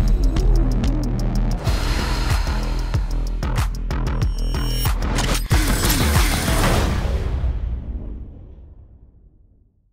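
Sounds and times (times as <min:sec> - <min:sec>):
music: 0:00.0 - 0:09.9
heavy hit: 0:01.6 - 0:04.0.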